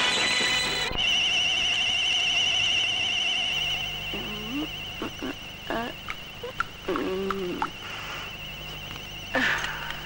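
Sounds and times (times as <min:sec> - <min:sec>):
high warbling electronic tone: 0:00.0 - 0:08.6.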